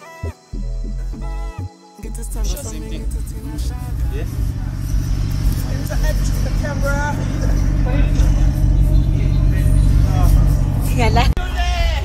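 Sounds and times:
vehicle engines idling: 1.0 - 12.0.

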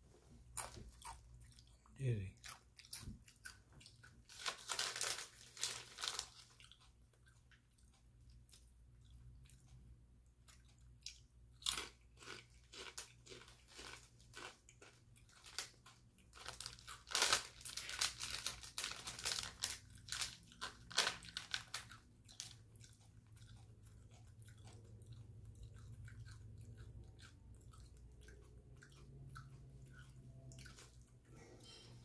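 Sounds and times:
faint low hum: 0.0 - 32.0
chips crunching: 4.0 - 6.9, 11.6 - 24.7.

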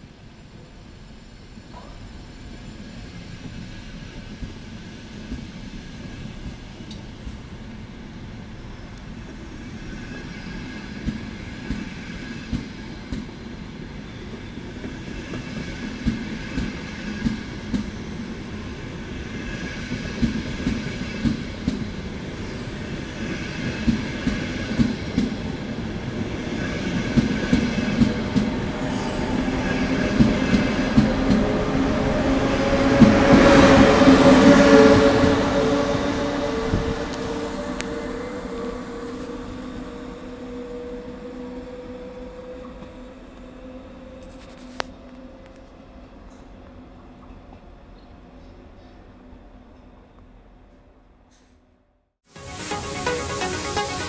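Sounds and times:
electric train whine: 0.0 - 46.1, 52.3 - 54.0.

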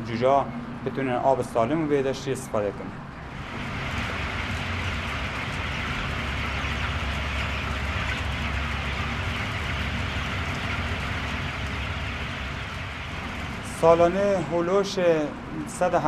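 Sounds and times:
low mechanical hum: 0.0 - 16.0
chickens chattering: 3.3 - 15.3.

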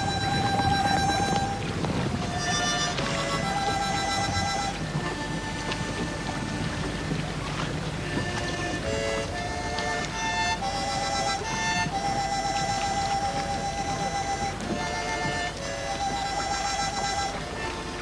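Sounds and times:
violin holding long notes: 0.0 - 18.0.

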